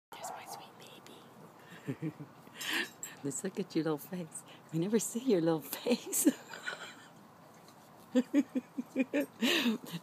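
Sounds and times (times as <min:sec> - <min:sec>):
person whispering: 0:00.1 - 0:01.4.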